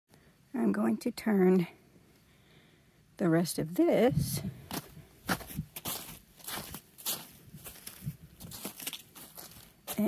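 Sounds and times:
crunching of crusted snow and ice: 4.7 - 10.0.

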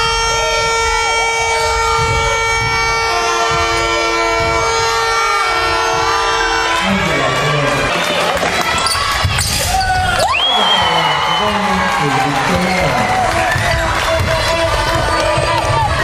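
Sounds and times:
steady horn-like tone: 0.0 - 7.9
crowd noise in large hall: 0.0 - 16.0
basketball bouncing on hardwood: 13.4 - 16.0.

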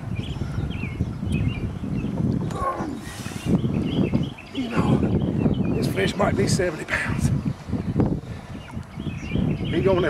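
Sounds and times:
man grunting: 4.6 - 5.1.

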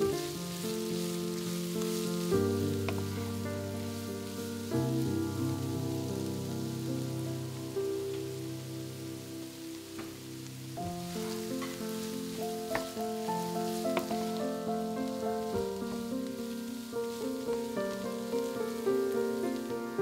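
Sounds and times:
food sizzling in a frying pan: 0.0 - 20.0
background music slow chords: 1.9 - 15.2.

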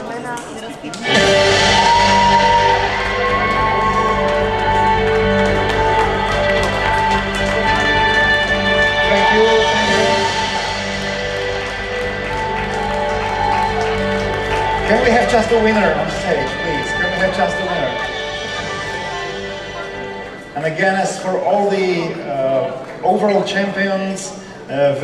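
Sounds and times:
music with a steady beat: 1.0 - 20.6.

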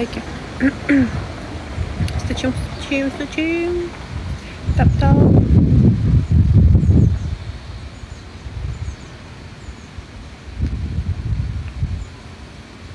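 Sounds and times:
wind buffeting microphone: 0.0 - 12.9.

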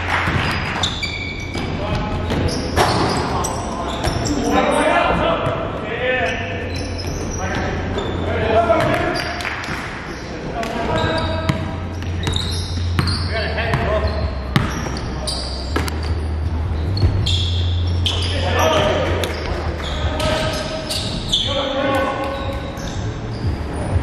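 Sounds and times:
basketball bouncing on gym floor: 0.1 - 3.3, 10.6 - 13.9, 14.5 - 15.0.

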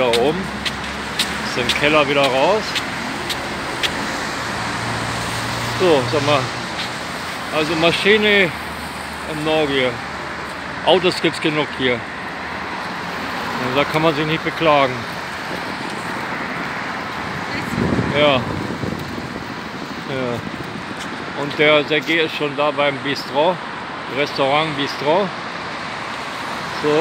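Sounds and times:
cars passing on wet pavement: 0.0 - 27.0.

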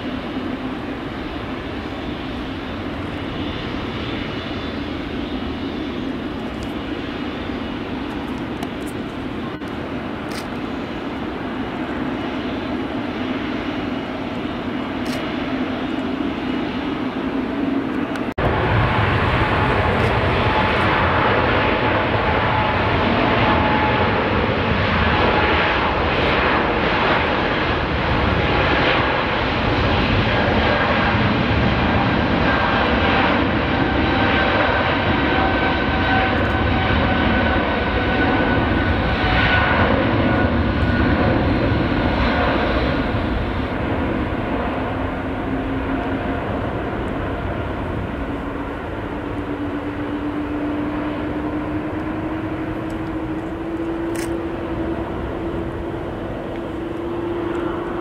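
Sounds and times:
jet engines at takeoff: 0.0 - 58.0.

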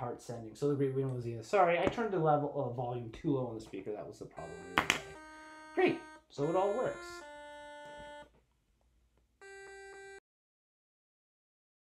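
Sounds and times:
electronic square-wave note: 4.4 - 8.3, 9.4 - 10.2.

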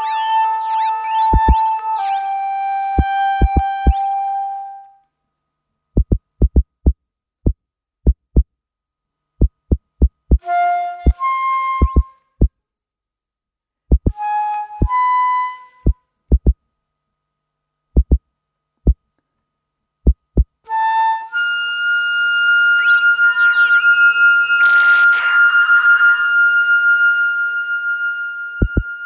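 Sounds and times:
flute with electronic effects: 0.0 - 5.0, 10.3 - 12.4, 14.0 - 16.0, 20.7 - 29.0
low paired thumps: 6.0 - 8.5, 9.4 - 10.4, 13.9 - 14.2, 16.3 - 16.6, 18.0 - 18.2, 20.1 - 20.6, 28.6 - 28.9.

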